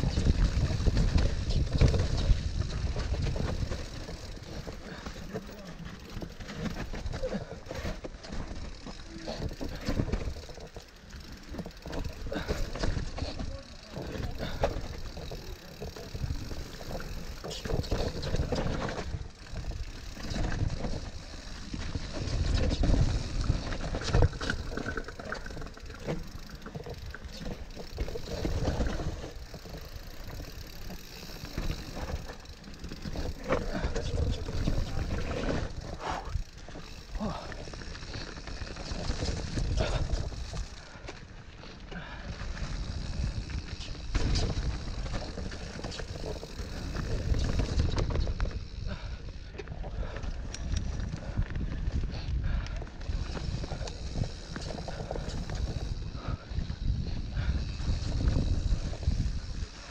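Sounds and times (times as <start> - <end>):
bike frame rattling: 0.0 - 59.9
bike tyres crunching leaves: 0.0 - 59.9.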